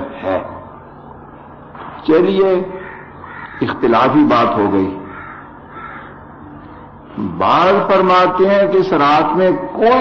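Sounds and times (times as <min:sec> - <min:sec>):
low steady hum: 0:00.0 - 0:10.0
faint bird calls: 0:02.7 - 0:03.8, 0:05.0 - 0:07.2.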